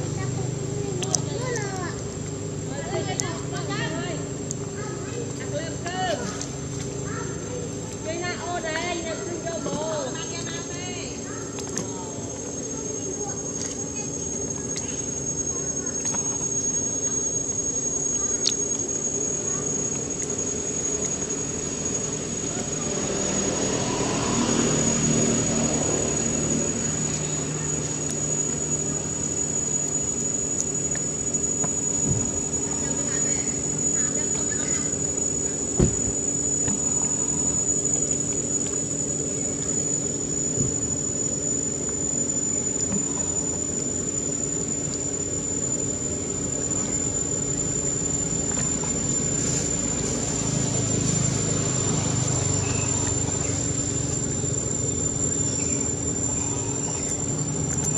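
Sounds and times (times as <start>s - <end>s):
insects droning: 0.0s - 57.9s.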